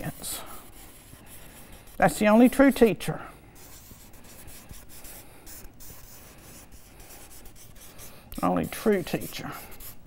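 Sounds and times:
marker pen scratching on paper: 0:00.0 - 0:02.9, 0:03.6 - 0:10.0.

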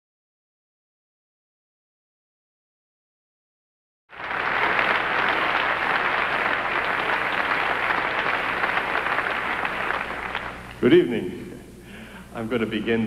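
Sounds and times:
audience applauding: 0:04.1 - 0:10.9.

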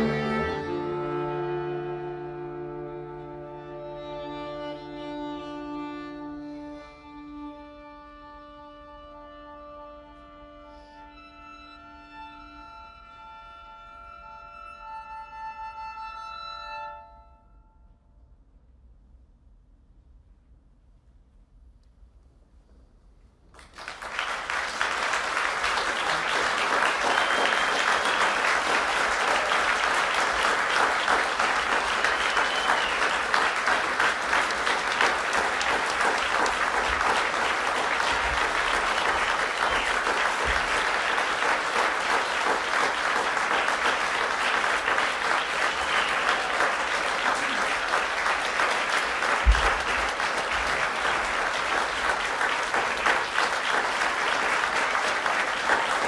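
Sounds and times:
audience applauding: 0:00.0 - 0:03.4, 0:23.5 - 0:56.0.

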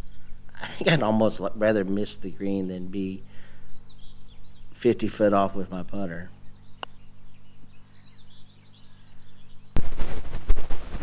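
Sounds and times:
birds chirping: 0:00.0 - 0:09.8.

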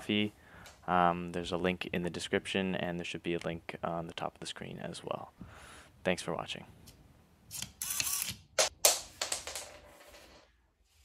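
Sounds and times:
kibble bouncing on hard floor: 0:08.6 - 0:10.4.

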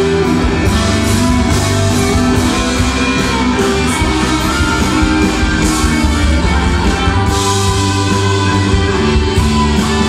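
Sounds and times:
rock band playing loudly: 0:00.0 - 0:10.0.

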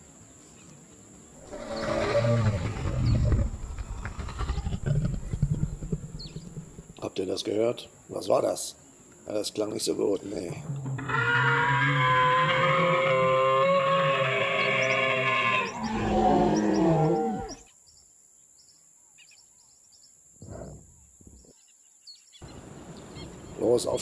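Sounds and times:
dinosaur roar: 0:01.4 - 0:07.0, 0:10.6 - 0:17.6.

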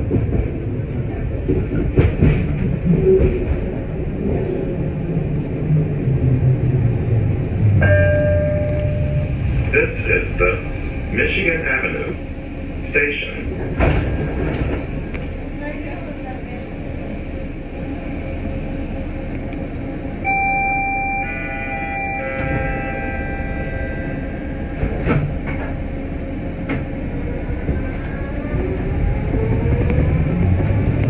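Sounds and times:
train car low hum: 0:00.0 - 0:31.0.

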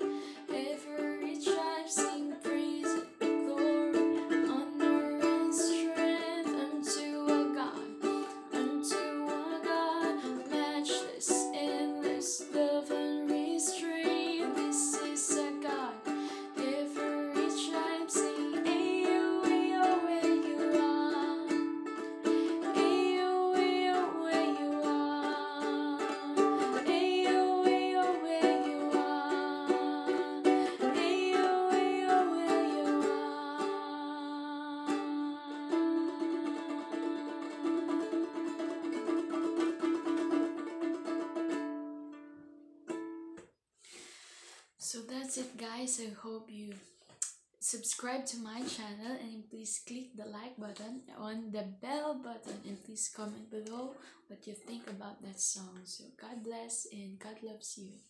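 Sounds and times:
woman singing: 0:00.0 - 0:40.2, 0:44.8 - 0:46.9, 0:47.6 - 0:58.0
ukulele strumming chords: 0:00.0 - 0:43.4.

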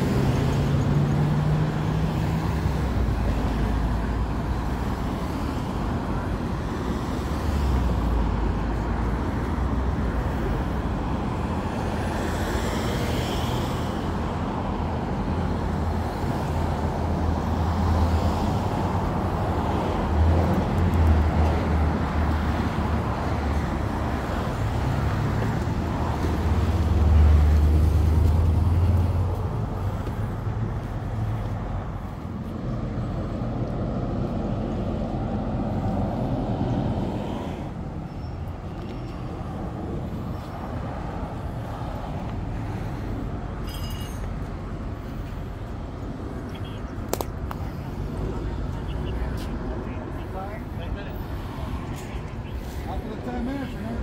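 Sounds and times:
road traffic: 0:00.0 - 0:54.0.

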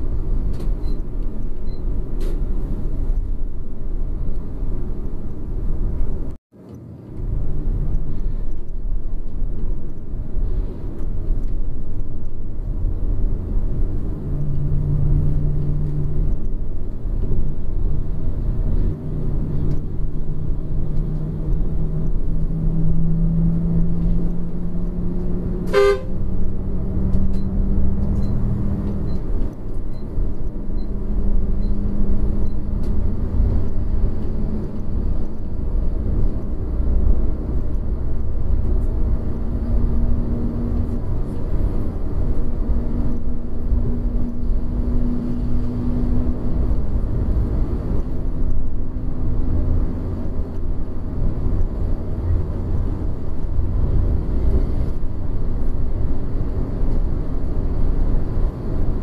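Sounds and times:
coach engine and road rumble: 0:00.0 - 0:59.0.

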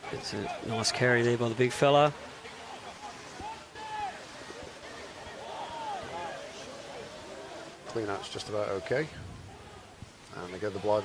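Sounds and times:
open-air background noise: 0:00.0 - 0:11.0
distant players shouting: 0:02.2 - 0:11.0.

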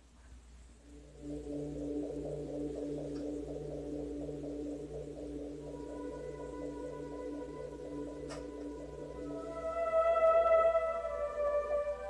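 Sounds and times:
electronic keyboard playing slow piece: 0:00.9 - 0:12.0.

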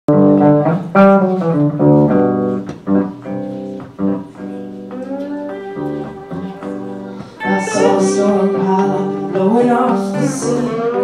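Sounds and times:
lap steel guitar: 0:00.1 - 0:11.0.

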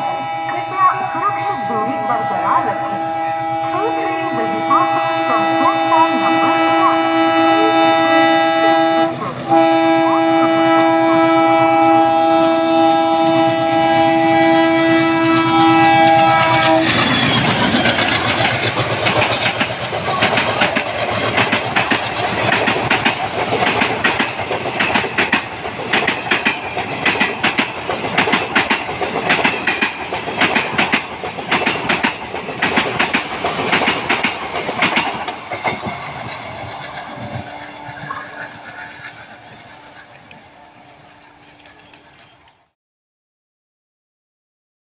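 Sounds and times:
train horn: 0:00.0 - 0:18.6, 0:36.9 - 0:42.5
train wheels clickety-clack: 0:12.6 - 0:42.6.

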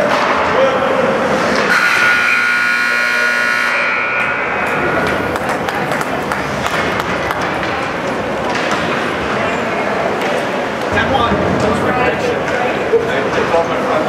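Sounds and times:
crowd noise: 0:00.0 - 0:14.0
ice rink horn blast: 0:01.6 - 0:05.4.

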